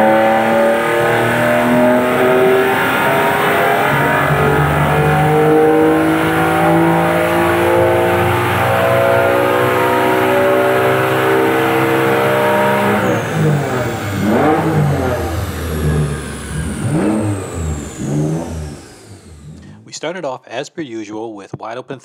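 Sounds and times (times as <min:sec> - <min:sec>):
car engine at full throttle: 0:00.0 - 0:19.8
high whine: 0:00.0 - 0:19.8.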